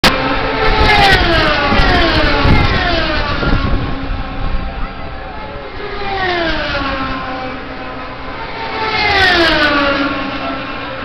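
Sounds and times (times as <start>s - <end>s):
race cars passing at speed: 0.0s - 11.0s
crowd din: 1.7s - 10.8s.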